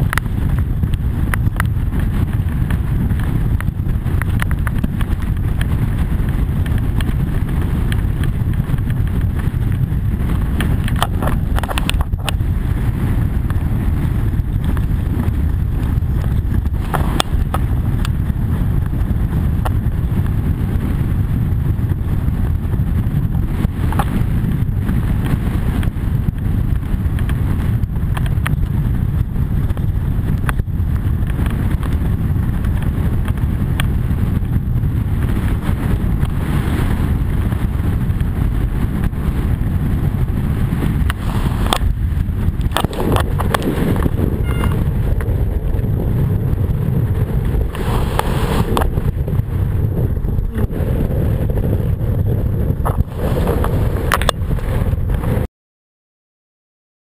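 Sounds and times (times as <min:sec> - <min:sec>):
wind buffeting microphone: 0:00.0 - 0:55.5.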